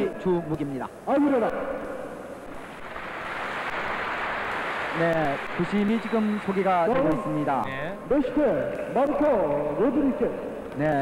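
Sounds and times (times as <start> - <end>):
crowd applauding: 2.8 - 6.9.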